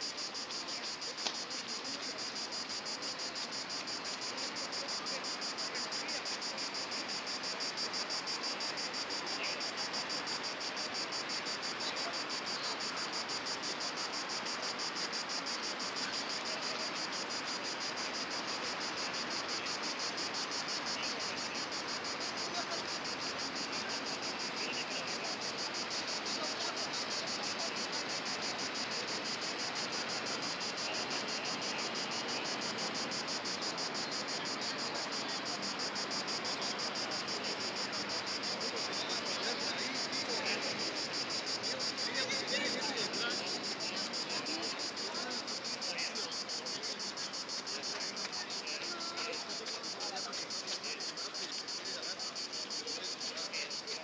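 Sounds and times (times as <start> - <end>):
insects chirping: 0.0 - 54.0.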